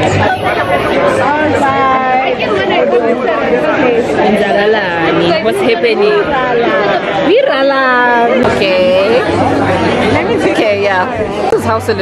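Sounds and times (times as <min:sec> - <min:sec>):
lively chatter of voices: 0:00.0 - 0:12.0.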